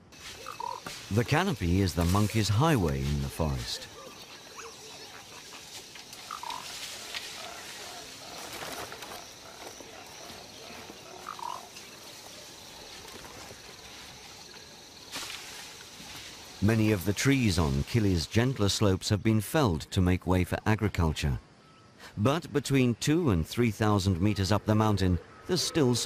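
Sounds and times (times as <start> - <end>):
high hum of insects: 0.0 - 26.0
animal calls: 0.2 - 14.1.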